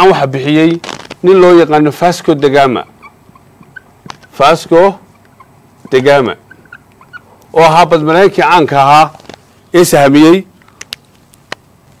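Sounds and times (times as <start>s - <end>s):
man speaking: 0.0s - 2.9s, 4.3s - 5.0s, 5.9s - 6.4s, 7.5s - 10.5s.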